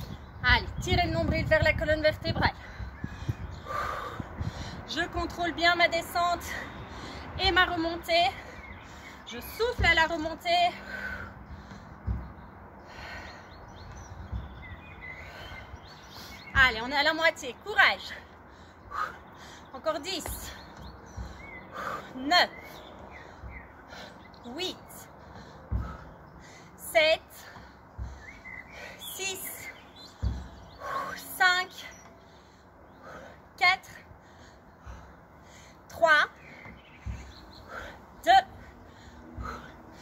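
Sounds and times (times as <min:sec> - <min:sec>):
steady low rumble: 0:00.0 - 0:17.1, 0:18.0 - 0:40.0
small birds chirping: 0:00.0 - 0:40.0
soft low thumps: 0:00.0 - 0:40.0.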